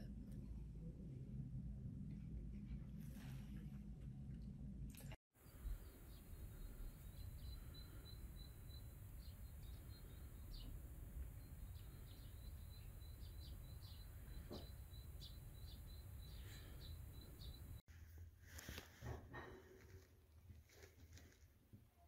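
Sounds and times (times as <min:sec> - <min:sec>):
low rumble: 0:00.0 - 0:17.8.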